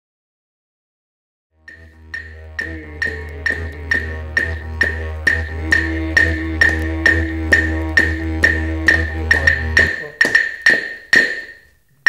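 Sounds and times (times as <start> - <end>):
didgeridoo drone: 1.6 - 10.3
wooden percussion strikes: 1.6 - 12.0.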